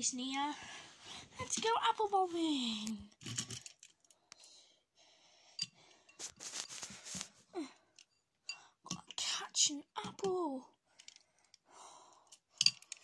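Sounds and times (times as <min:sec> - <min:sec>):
handling clicks and rustles: 0:06.2 - 0:07.4.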